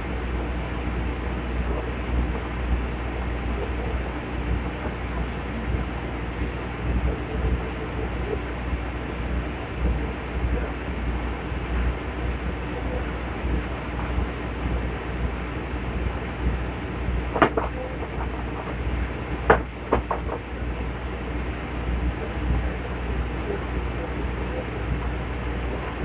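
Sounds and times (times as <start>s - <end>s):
low background rumble: 0.0s - 26.0s.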